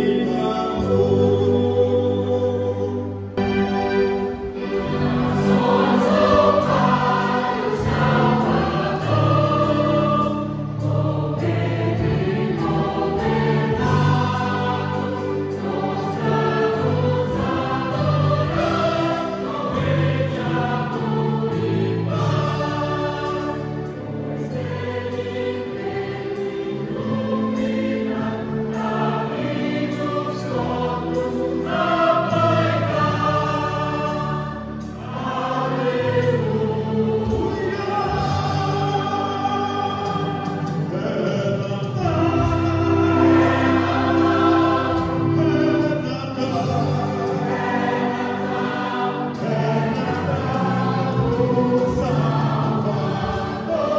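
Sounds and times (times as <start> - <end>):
mixed choir singing: 0.0 - 53.9.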